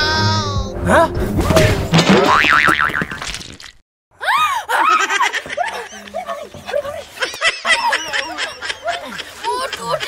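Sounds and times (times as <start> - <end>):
high-pitched giggling: 4.4 - 10.0.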